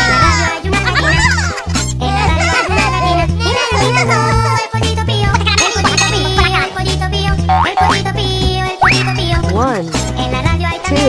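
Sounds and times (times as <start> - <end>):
children's music with bass beat: 0.0 - 11.0
cartoon boing rising in pitch: 7.5 - 8.0.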